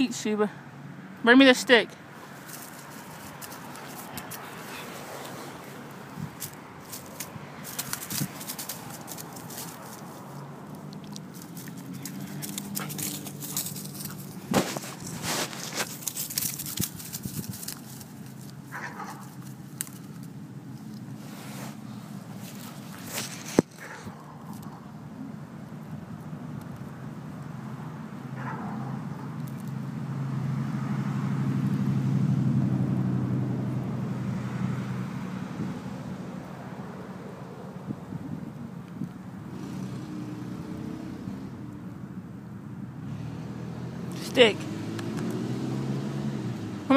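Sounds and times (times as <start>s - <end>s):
road traffic rumble: 0.0s - 46.9s
dog chewing wooden stick: 2.4s - 21.2s.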